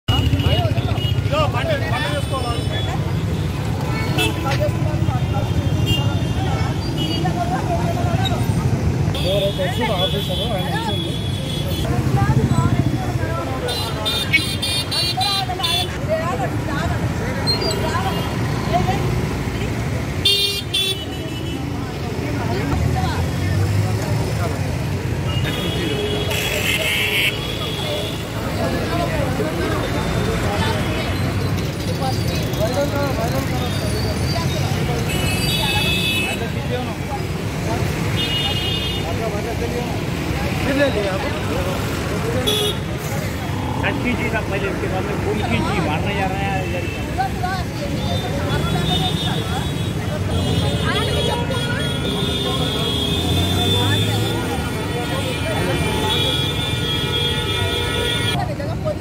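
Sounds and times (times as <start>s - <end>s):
traffic engine rumble: 0.0s - 59.0s
car horns honking: 42.3s - 43.2s, 48.1s - 58.4s.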